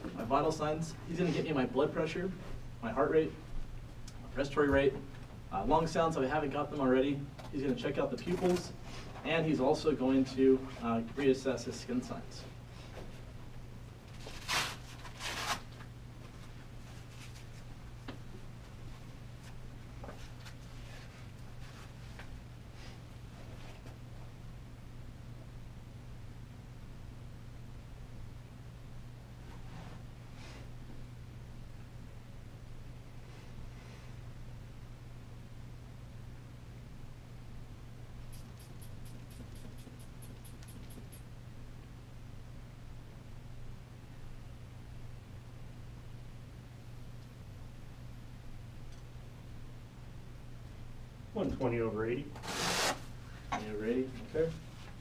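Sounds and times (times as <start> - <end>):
low room hum: 0.0 - 55.0
blood pressure cuff rasping rip: 52.4 - 53.0.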